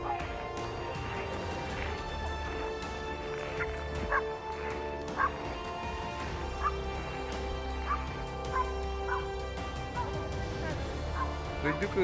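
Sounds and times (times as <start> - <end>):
music of sustained tones: 0.0 - 12.0
dog barking: 3.5 - 4.3, 5.1 - 5.4, 6.6 - 6.8, 7.8 - 9.3, 9.9 - 11.4.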